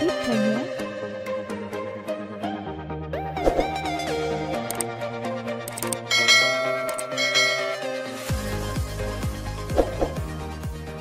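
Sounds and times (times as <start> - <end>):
electronic background music: 0.0 - 11.0
bell-like chime: 6.1 - 8.3.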